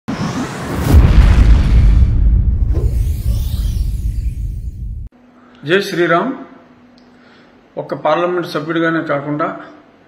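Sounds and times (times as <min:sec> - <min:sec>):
rising whoosh: 0:00.1 - 0:05.1
deep boom: 0:00.6 - 0:05.1.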